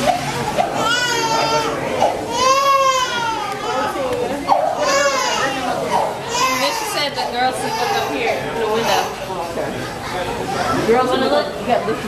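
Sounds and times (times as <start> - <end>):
children calling and whining: 0.0 - 12.0
people talking: 0.0 - 12.0.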